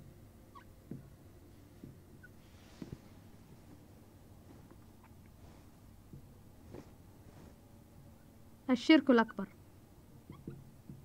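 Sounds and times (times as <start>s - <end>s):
marker squeak: 10.3s - 10.6s.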